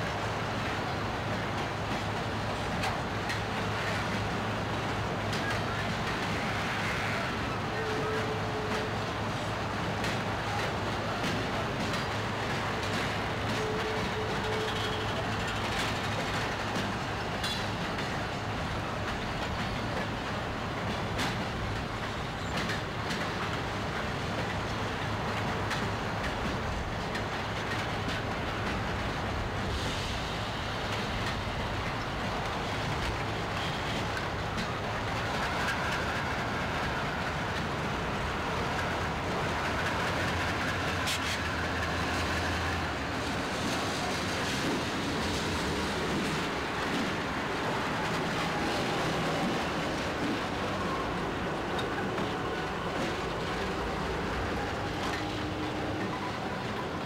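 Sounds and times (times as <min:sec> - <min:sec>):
diesel locomotive engine humming: 0:00.0 - 0:57.0
freight train cars clattering: 0:00.1 - 0:57.0.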